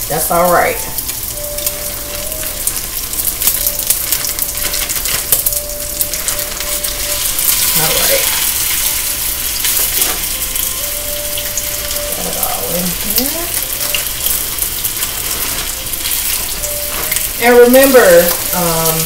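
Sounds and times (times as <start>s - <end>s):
chicken sizzling in hot oil: 0.0s - 19.0s.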